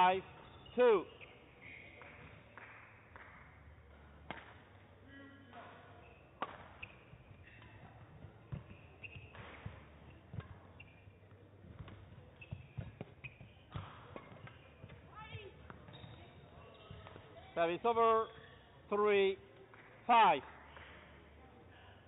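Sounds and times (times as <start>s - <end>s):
shoes squeaking on court: 0.1s - 2.6s, 5.6s - 18.8s
rackets striking shuttlecock: 3.9s - 4.8s, 5.6s - 16.0s.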